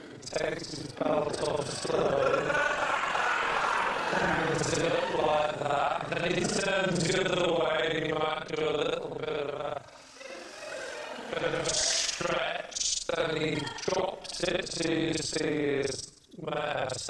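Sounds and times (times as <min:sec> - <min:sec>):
man speaking: 0:00.0 - 0:02.6, 0:04.1 - 0:10.0, 0:11.3 - 0:17.0.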